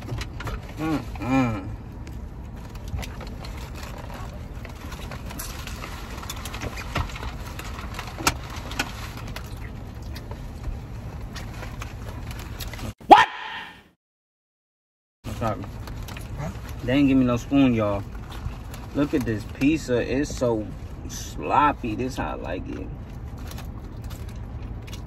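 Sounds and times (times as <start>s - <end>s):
paper food wrapper crinkling: 2.1s - 13.0s, 15.3s - 21.0s
person shouting: 13.0s - 13.9s.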